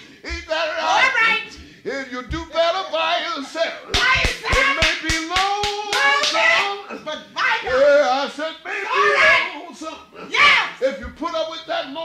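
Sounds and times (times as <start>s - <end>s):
rhythmic hand clapping: 3.9s - 6.8s.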